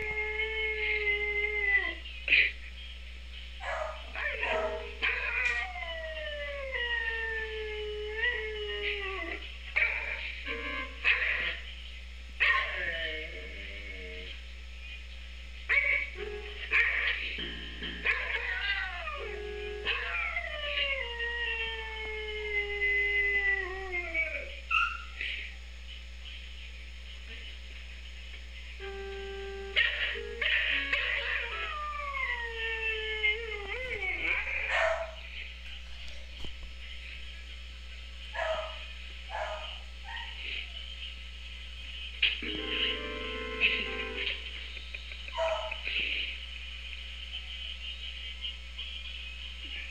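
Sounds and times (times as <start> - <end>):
dog howling: 0.0 - 2.1, 3.6 - 11.6, 12.4 - 14.4, 15.7 - 17.3, 18.0 - 25.2, 29.8 - 35.2
electronic keyboard notes: 10.5 - 11.0, 16.2 - 16.7, 17.4 - 18.1, 19.2 - 20.1, 28.8 - 31.7, 42.4 - 44.6
paws knocking on keys: 44.6 - 45.9.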